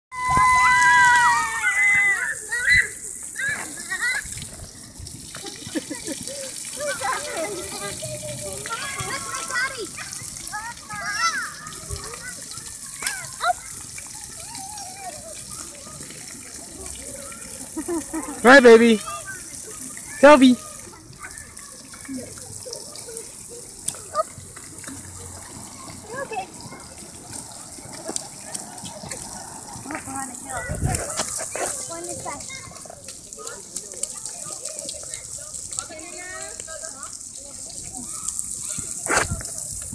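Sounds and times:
children's voices: 0:00.2 - 0:18.4, 0:19.0 - 0:39.9
fountain jets spraying: 0:00.2 - 0:39.9.

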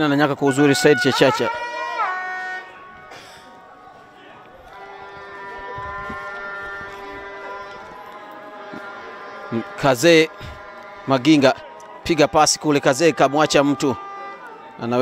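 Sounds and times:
faint stadium ambience: 0:00.0 - 0:15.0
sustained horn notes: 0:00.5 - 0:15.0.

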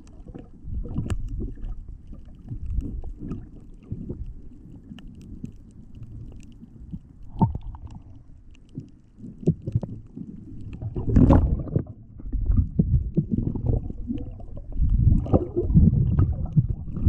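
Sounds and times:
muffled underwater rumble: 0:00.0 - 0:17.0
small clicks and crackles: 0:00.0 - 0:17.0.

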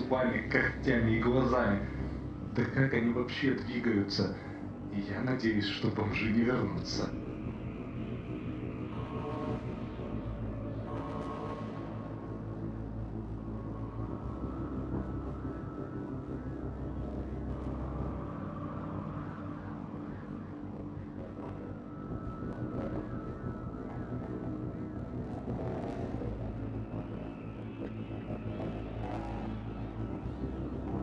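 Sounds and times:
low rumbling drone: 0:00.0 - 0:31.0.

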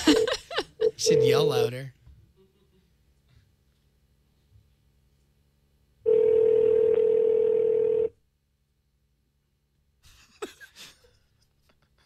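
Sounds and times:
telephone ringback tone: 0:06.1 - 0:08.1.

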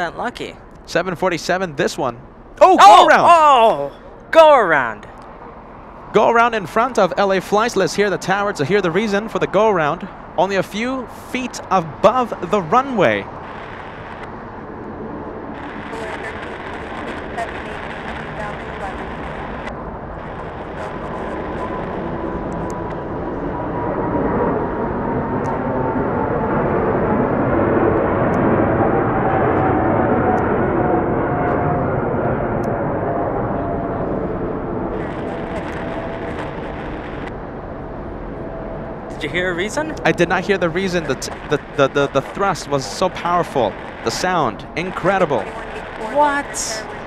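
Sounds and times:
jet engines roaring overhead: 0:00.7 - 0:47.0
jet engine whine: 0:02.2 - 0:47.0.

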